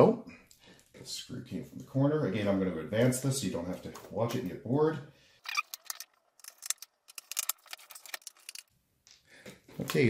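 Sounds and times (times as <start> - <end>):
screwdriver clicking screws: 5.6 - 8.6.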